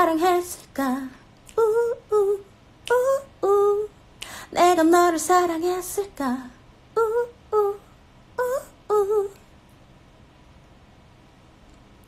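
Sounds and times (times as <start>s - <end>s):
woman singing unaccompanied: 0.0s - 9.5s.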